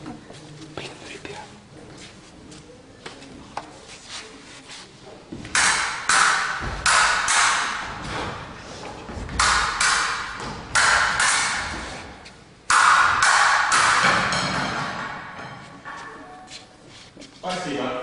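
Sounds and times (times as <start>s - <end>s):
fencing swords clashing: 5.5s - 8.5s, 9.3s - 16.7s.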